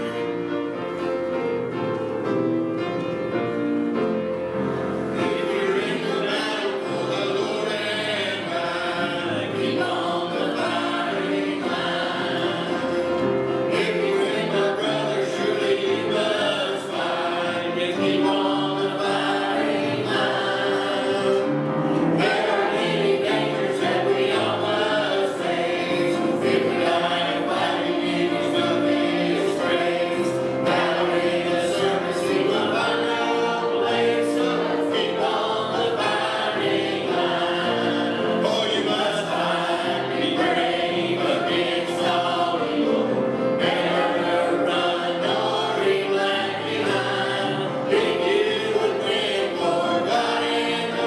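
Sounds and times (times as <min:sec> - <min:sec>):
choir singing a hymn: 0:00.0 - 0:51.0.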